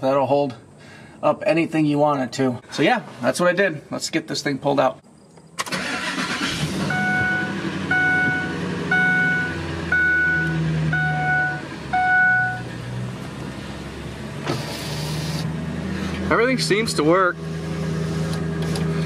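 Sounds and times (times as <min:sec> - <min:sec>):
truck engine idling: 0:05.8 - 0:18.3
dashboard warning chime: 0:06.8 - 0:12.6.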